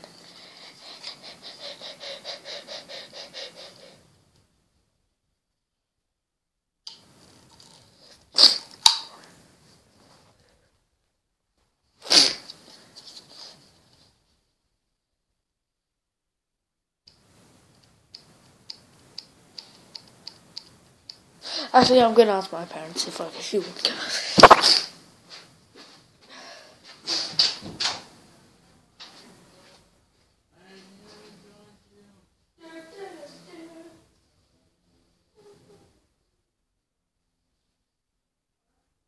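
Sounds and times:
person sneezing: 0:12.0 - 0:12.5, 0:24.1 - 0:25.0.

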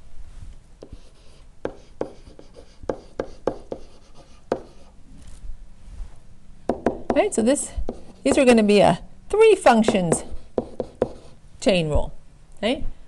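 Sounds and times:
stylus tapping and scratching: 0:00.8 - 0:04.9, 0:07.9 - 0:08.5, 0:09.8 - 0:11.4.

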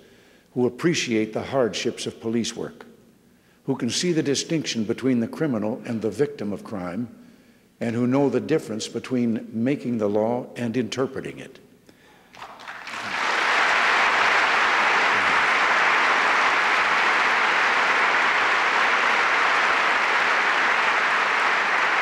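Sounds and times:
audience applauding: 0:12.3 - 0:22.0.

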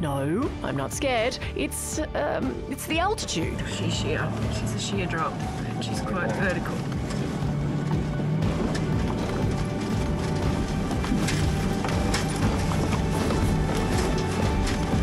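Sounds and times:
background music with percussive hits: 0:00.0 - 0:15.0.

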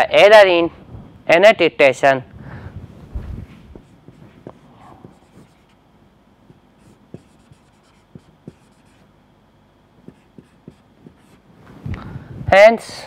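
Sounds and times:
marker pen writing on whiteboard: 0:03.7 - 0:05.8, 0:06.5 - 0:09.1, 0:10.0 - 0:11.4.

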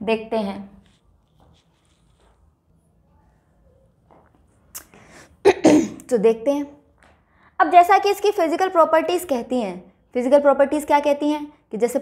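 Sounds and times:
person sneezing: 0:04.8 - 0:06.1.

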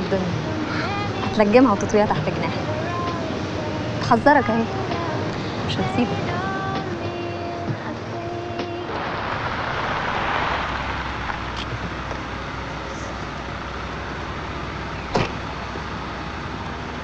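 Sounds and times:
car engine idling: 0:00.0 - 0:17.0
car door shutting: 0:15.1 - 0:15.4.

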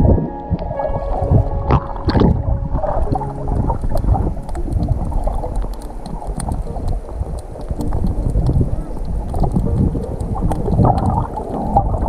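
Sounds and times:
muffled underwater churning: 0:00.0 - 0:12.0
faint clicks: 0:03.0 - 0:12.0.

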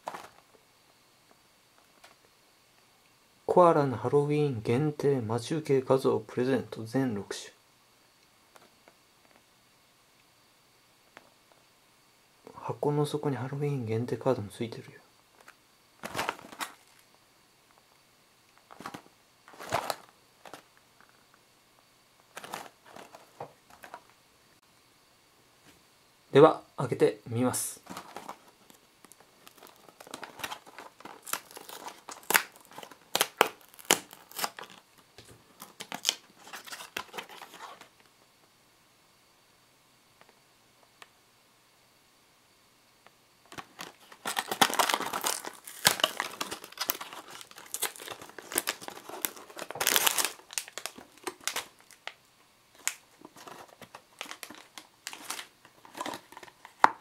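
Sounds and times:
cardboard box tearing and crackling: 0:29.4 - 0:34.8, 0:43.8 - 0:52.0, 0:52.8 - 0:56.5.

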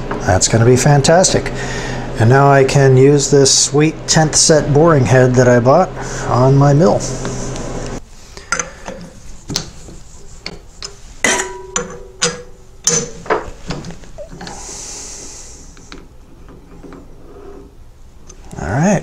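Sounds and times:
steel tooling clinking: 0:10.4 - 0:13.8
ringing metal knock: 0:11.2 - 0:13.2.

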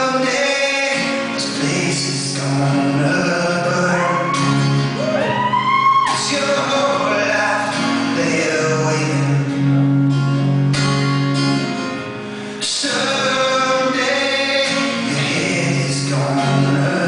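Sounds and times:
man singing: 0:00.0 - 0:05.0, 0:06.1 - 0:10.0, 0:12.6 - 0:17.0
acoustic guitar: 0:00.0 - 0:17.0.

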